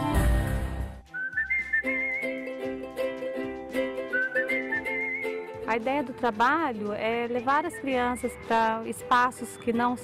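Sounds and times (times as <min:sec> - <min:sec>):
plucked string accompaniment: 0:00.0 - 0:10.0
whistled melody: 0:01.0 - 0:02.6, 0:03.8 - 0:05.5, 0:07.4 - 0:10.0.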